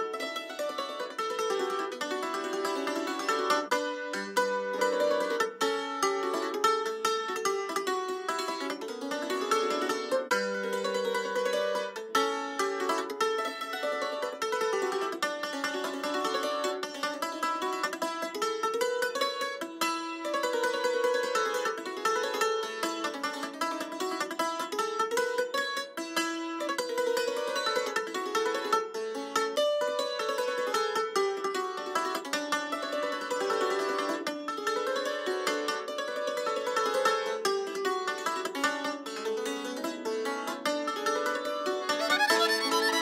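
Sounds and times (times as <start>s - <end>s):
plucked string instrument dance tune: 0.0s - 43.0s.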